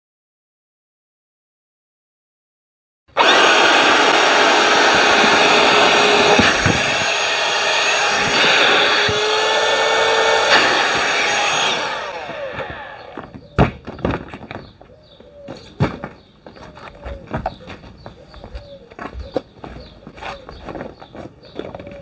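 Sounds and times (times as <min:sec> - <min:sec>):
electric air pump running: 0:03.1 - 0:13.3.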